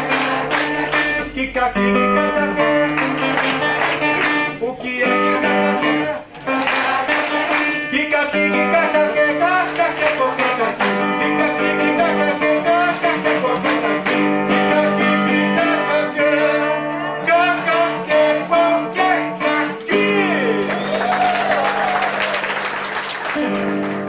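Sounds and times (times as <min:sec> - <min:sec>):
acoustic guitar plucked notes: 0:00.0 - 0:20.7
man singing: 0:00.0 - 0:20.8.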